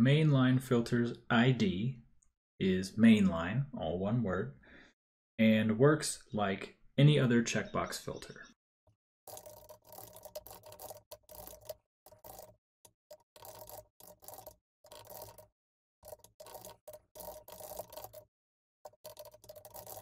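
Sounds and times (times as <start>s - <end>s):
keyboard typing: 9.3s - 20.0s.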